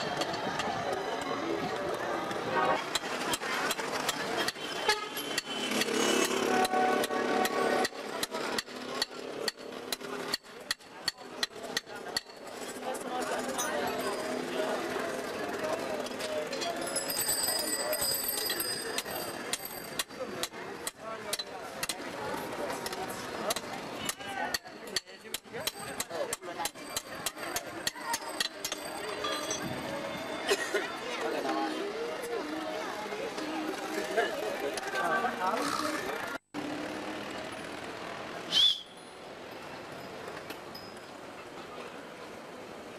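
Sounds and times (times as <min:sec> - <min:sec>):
people talking: 0:00.0 - 0:04.8, 0:06.4 - 0:38.2.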